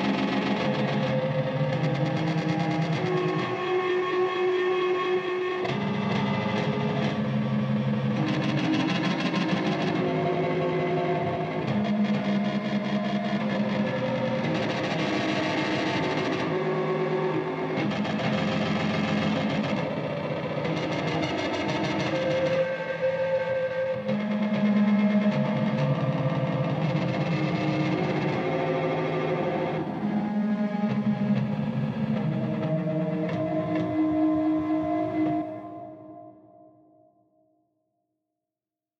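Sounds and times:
ambient electric guitar music: 0.0 - 36.7.

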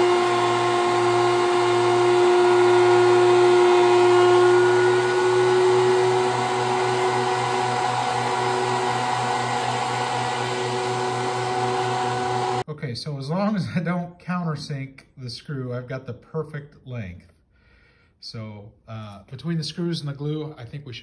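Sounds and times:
thickness planer running: 0.0 - 12.6.

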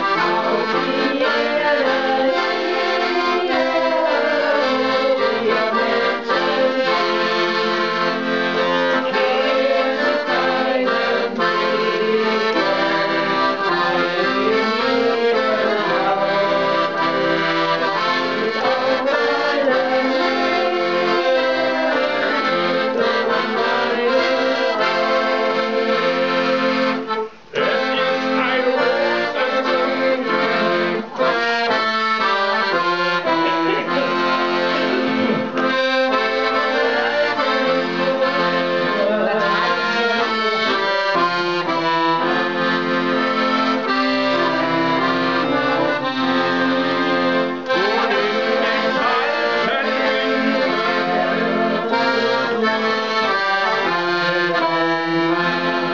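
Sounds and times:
piano accordion tune: 0.0 - 55.9.

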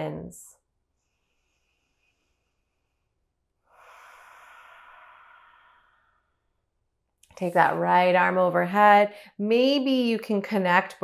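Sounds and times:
soft long breath: 0.9 - 6.7.

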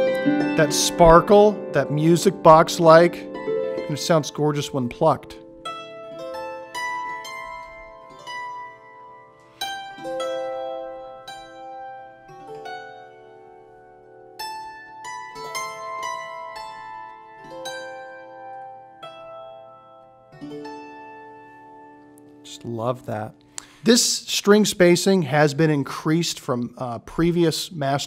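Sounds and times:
dulcimer melody: 0.0 - 25.2.

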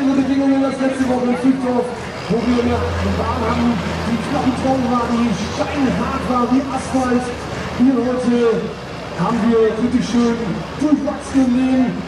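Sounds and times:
man talking: 0.0 - 12.0
tractor diesel engine drone: 0.0 - 12.0.

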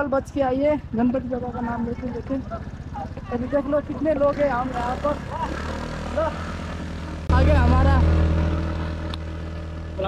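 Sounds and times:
voices: 0.0 - 9.3
motorcycle engine idling: 0.0 - 10.0.

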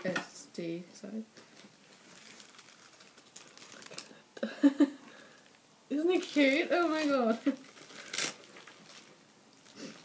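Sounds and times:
plastic wrapping crinkling: 1.4 - 4.2, 5.2 - 10.0.

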